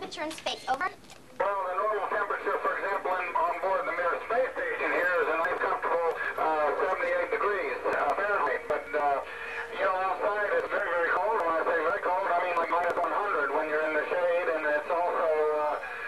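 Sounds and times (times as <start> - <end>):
man talking over radio: 1.4 - 16.0.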